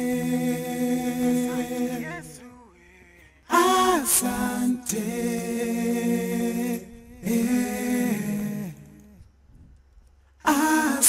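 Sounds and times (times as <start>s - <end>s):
layered sung vocal harmonies: 0.0s - 9.3s, 10.4s - 11.0s.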